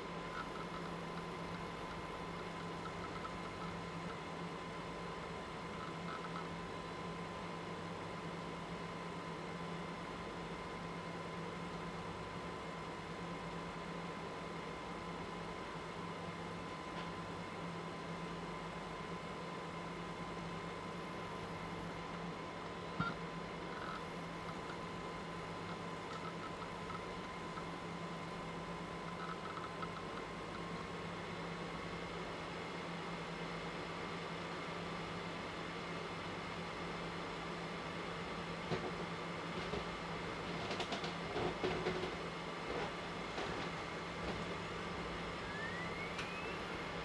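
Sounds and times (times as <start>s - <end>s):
electrical hum and hiss: 0.0s - 47.0s
faint high whine: 45.1s - 47.0s.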